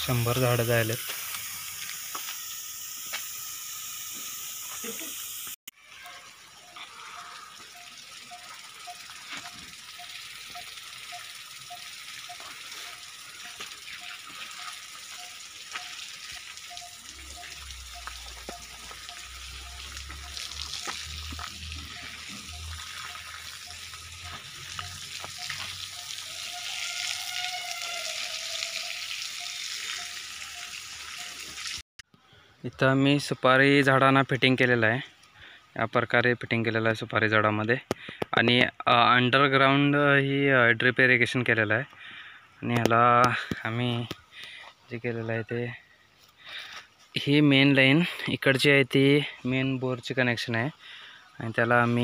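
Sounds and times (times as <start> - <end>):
running water hiss: 0.0 - 31.8.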